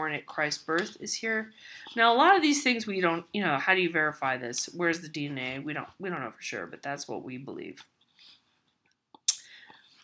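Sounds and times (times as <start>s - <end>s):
faint mouth noise: 9.2s - 9.6s.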